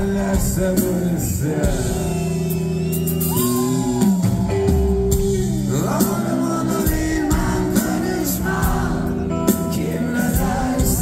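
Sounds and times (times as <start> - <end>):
drums: 0.0 - 11.0
person singing: 3.3 - 11.0.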